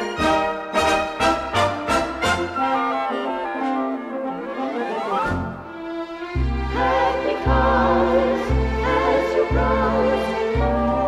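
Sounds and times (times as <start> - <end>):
theatre orchestra with brass: 0.0 - 11.0.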